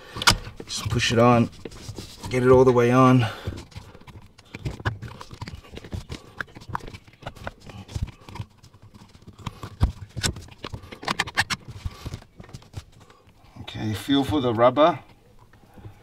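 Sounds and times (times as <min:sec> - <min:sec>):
pedal cover clicking and knocking: 0:00.1 - 0:13.0.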